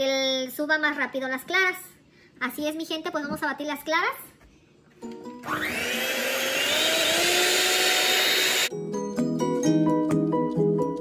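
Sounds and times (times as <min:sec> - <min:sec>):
electric hand mixer whining: 0:05.4 - 0:08.7
background music: 0:06.8 - 0:11.0.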